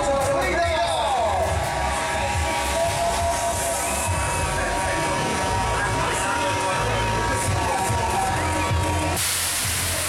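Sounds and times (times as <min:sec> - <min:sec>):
crowd hubbub: 0:00.0 - 0:10.0
fairground music with bass beat: 0:00.0 - 0:10.0.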